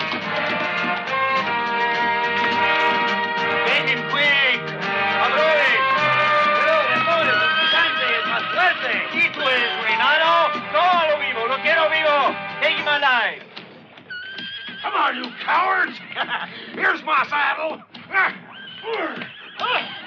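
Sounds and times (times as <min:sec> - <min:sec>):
horse whinnying: 0:00.0 - 0:12.8, 0:13.4 - 0:16.9, 0:17.8 - 0:20.0
film score music: 0:00.0 - 0:20.0.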